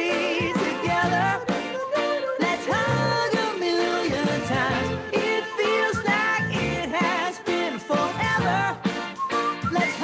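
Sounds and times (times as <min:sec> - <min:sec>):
woman singing: 0:00.0 - 0:08.8
backing band: 0:00.0 - 0:10.0.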